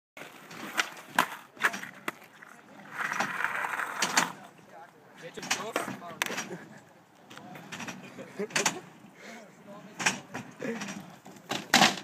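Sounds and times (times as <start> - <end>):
skate wheels rolling: 0.2 - 12.0.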